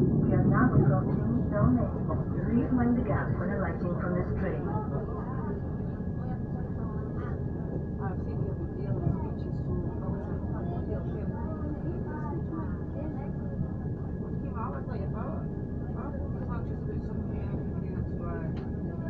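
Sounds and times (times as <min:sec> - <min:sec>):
people talking indistinctly: 0:00.0 - 0:19.0
train rumble inside carriage: 0:00.0 - 0:19.0.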